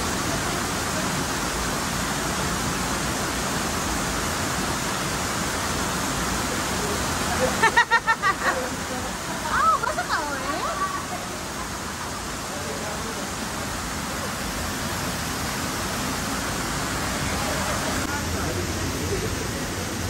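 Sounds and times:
waterfall rushing: 0:00.0 - 0:20.0
people's voices: 0:06.5 - 0:14.5, 0:16.9 - 0:20.0.

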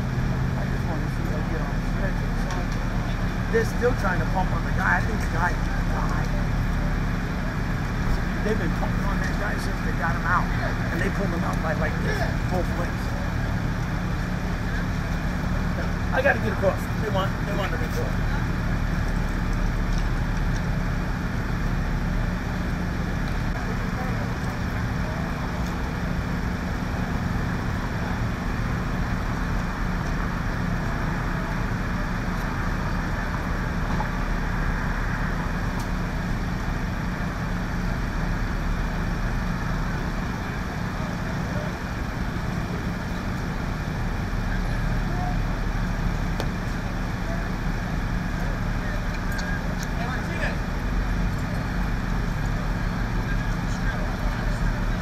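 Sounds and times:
engine droning: 0:00.0 - 0:55.0.

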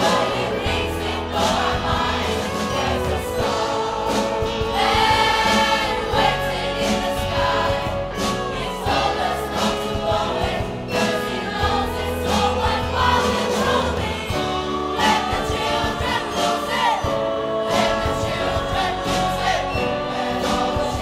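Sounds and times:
bass notes: 0:00.0 - 0:21.0
choir singing in harmony: 0:00.0 - 0:21.0
drum kit beat: 0:00.0 - 0:21.0.

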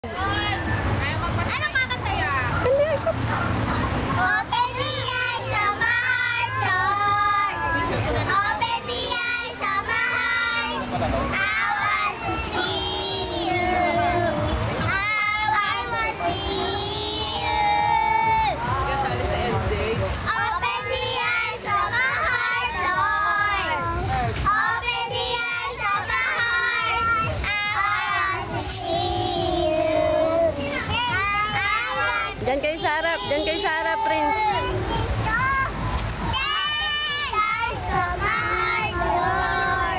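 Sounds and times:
young girls singing: 0:04.1 - 0:18.6, 0:20.2 - 0:39.9.

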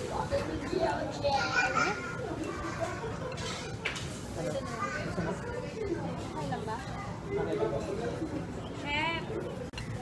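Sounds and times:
dining room chatter: 0:00.0 - 0:10.0
child's high-pitched voice: 0:01.1 - 0:03.2.

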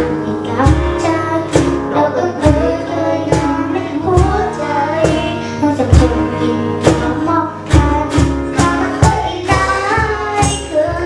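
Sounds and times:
acoustic guitar: 0:00.0 - 0:11.0
girl singing: 0:00.0 - 0:11.0
strong beat: 0:00.0 - 0:11.0.

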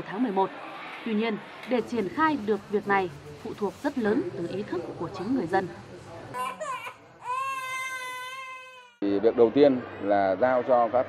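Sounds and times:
infant crying: 0:06.4 - 0:09.0.

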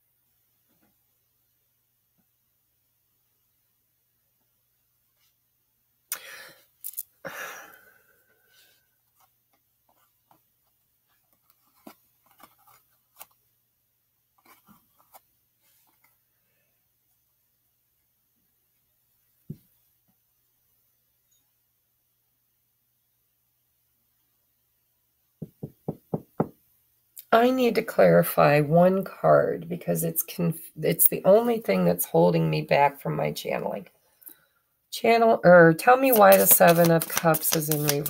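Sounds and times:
cards tapping and rustling: 0:11.4 - 0:13.4, 0:36.0 - 0:38.0
knuckles knocking on cards: 0:25.4 - 0:26.6.

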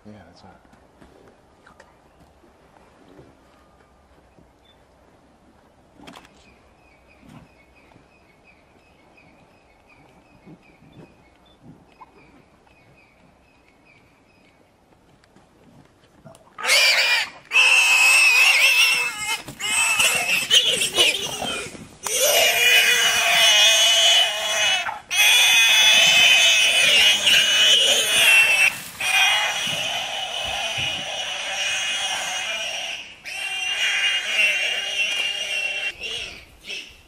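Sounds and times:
warthog squealing: 0:16.6 - 0:36.9.

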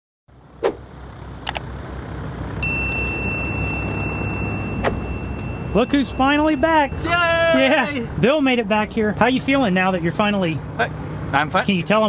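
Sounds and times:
low outdoor rumble: 0:00.3 - 0:12.0
notification bell ding: 0:02.6 - 0:07.1.

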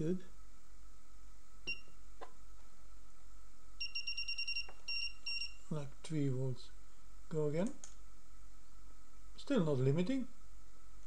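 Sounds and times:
electronic device beeps: 0:03.8 - 0:05.6.

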